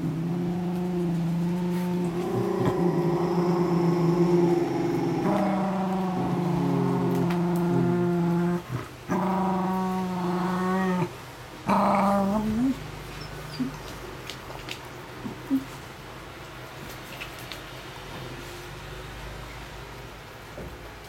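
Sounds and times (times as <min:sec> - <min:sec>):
dog moaning growls: 0:00.0 - 0:12.8.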